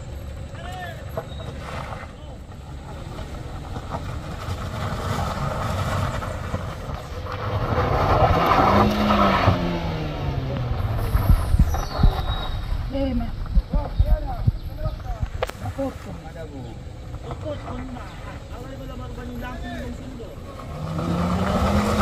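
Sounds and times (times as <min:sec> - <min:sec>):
car engine pulling under load: 0:00.0 - 0:22.0
tyres crunching on gravel: 0:00.0 - 0:22.0.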